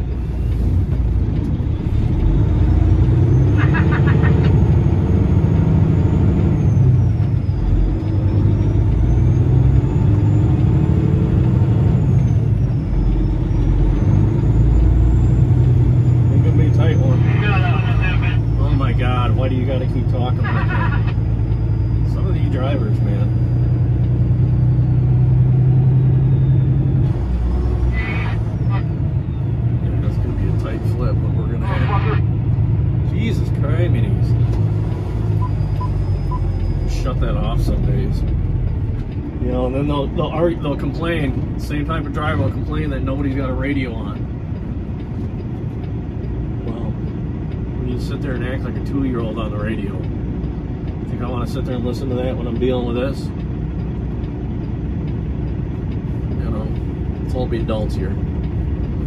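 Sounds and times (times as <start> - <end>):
diesel truck engine: 0.0 - 59.0.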